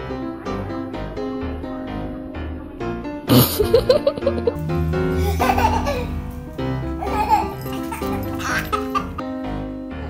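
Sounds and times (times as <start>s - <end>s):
background music: 0.0s - 10.0s
baby giggling: 3.3s - 6.2s, 7.0s - 9.2s.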